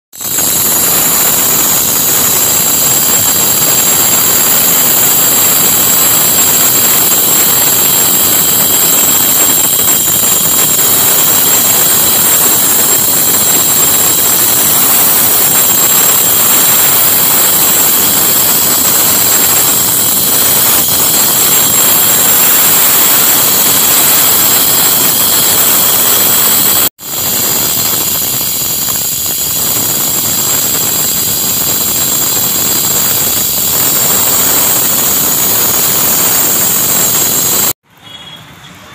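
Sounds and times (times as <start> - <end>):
angle grinders cutting stone: 0.2 - 37.8.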